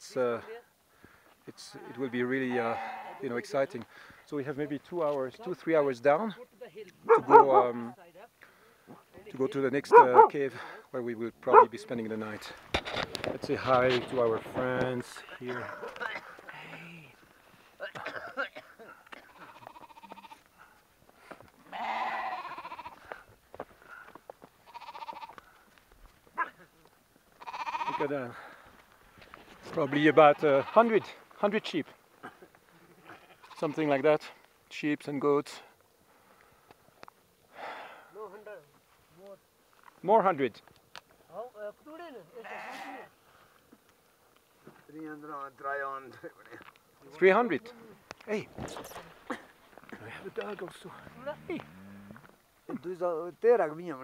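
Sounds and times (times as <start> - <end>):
sheep and goats bleating: 1.7 - 3.5, 17.8 - 20.8, 21.5 - 23.3, 23.9 - 25.6, 26.4 - 28.6, 29.7 - 31.3, 32.2 - 34.0, 42.2 - 43.2, 50.4 - 52.4.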